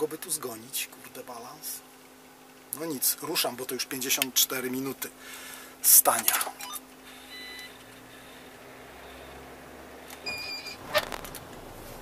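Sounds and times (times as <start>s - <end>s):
short electronic beeps: 6.6s - 8.4s, 10.2s - 10.8s.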